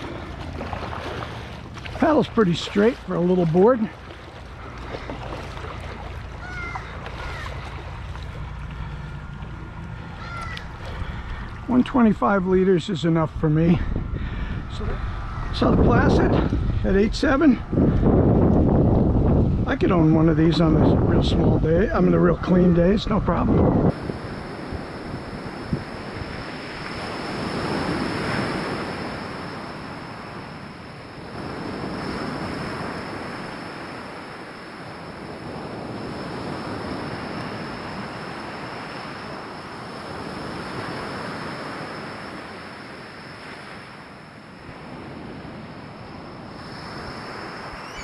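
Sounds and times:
small waves breaking: 0.0s - 15.4s, 22.2s - 48.0s.

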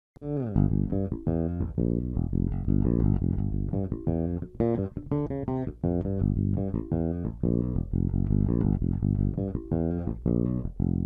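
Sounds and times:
electric bass guitar plucked: 0.2s - 11.0s.

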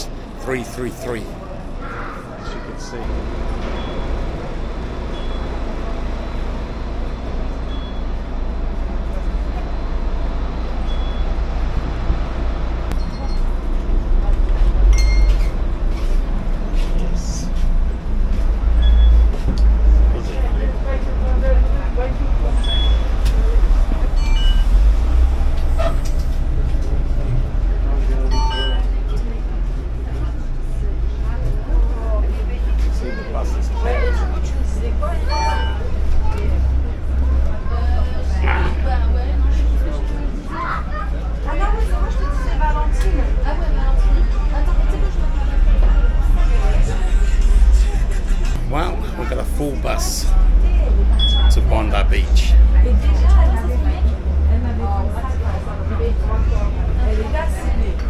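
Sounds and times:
bus engine rumble: 0.0s - 58.0s
passengers chatting: 0.0s - 58.0s
short high beeps: 28.3s - 28.9s, 35.3s - 36.0s, 51.2s - 51.6s.

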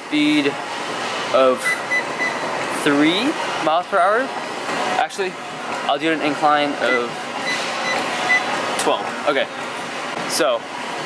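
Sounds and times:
treadmill whirring: 0.0s - 11.0s.

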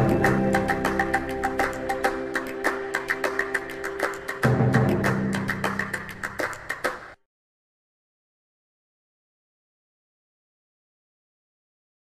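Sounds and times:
background music with steady beat: 0.0s - 7.2s.

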